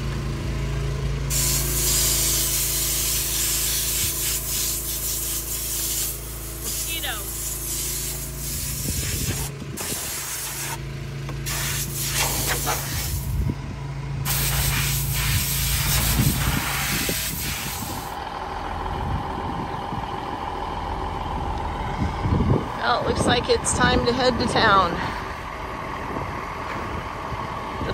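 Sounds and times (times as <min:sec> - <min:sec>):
compressed-air blow gun hissing: 0:01.3 - 0:10.8, 0:11.4 - 0:13.4, 0:14.2 - 0:18.2.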